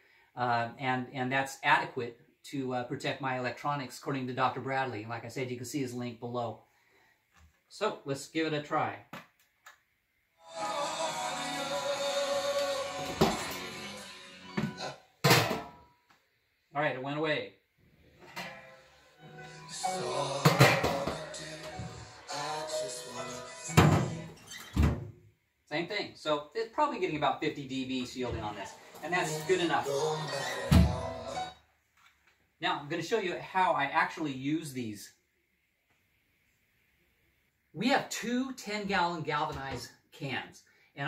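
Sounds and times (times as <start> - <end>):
portable radio playing music: 10.4 - 15.5, 18.3 - 24.6, 28.3 - 31.6
metal lid clank: 18.2 - 18.8.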